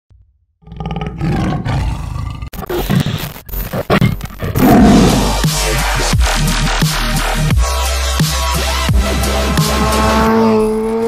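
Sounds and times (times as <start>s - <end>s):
loud roar: 0.7s - 2.5s, 4.5s - 5.7s
choppy stuttering glitch effects: 2.6s - 6.9s.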